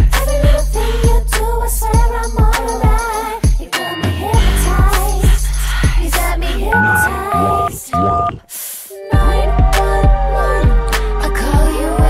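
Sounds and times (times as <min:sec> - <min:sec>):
song beat: 0:00.0 - 0:08.4, 0:09.2 - 0:12.0
telephone keypad tones: 0:06.8 - 0:08.4.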